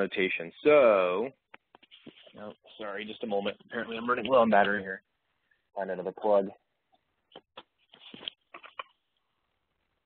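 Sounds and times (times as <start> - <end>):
brief rustle: 7.6 - 8.9.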